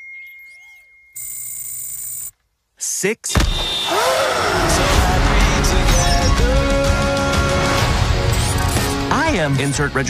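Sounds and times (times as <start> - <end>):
electronic chirp: 0.0 - 2.3
thin steady high tone: 0.0 - 2.3.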